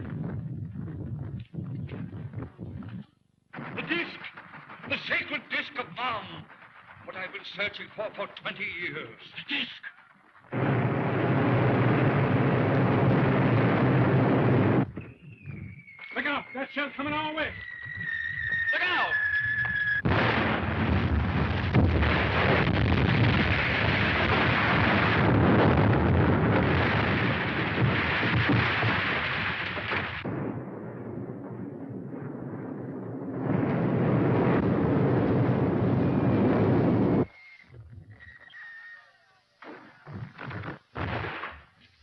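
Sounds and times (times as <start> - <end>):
loud explosion: 3.5 - 7.4, 10.4 - 16.6, 17.4 - 37.3, 39.6 - 41.7
falling debris rumbling: 3.6 - 8.1, 10.0 - 15.1, 20.0 - 37.2
artillery shell whistle: 15.0 - 20.1, 35.9 - 39.2.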